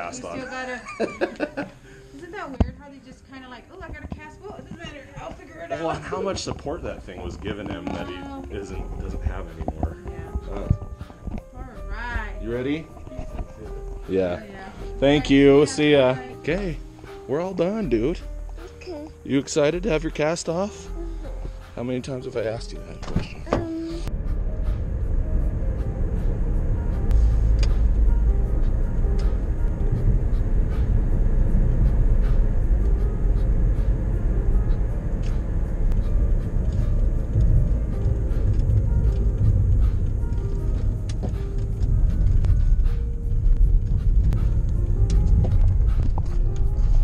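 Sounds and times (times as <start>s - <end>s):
music playing: 0.0s - 47.0s
car road rumble: 2.2s - 15.8s, 20.8s - 47.0s.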